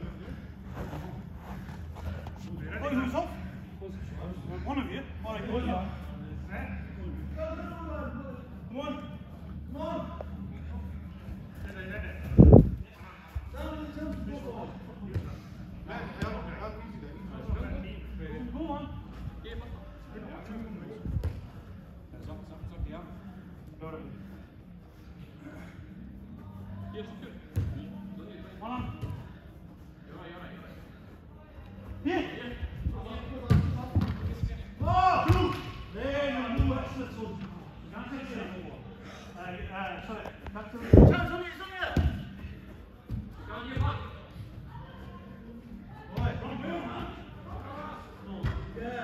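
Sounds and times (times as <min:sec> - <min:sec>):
men's voices: 0:00.0 - 0:21.2
football being kicked: 0:27.5 - 0:27.8, 0:33.4 - 0:34.2.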